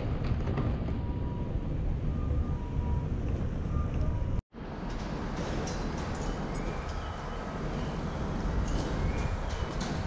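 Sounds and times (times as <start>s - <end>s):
wind on microphone: 8.2s - 10.0s.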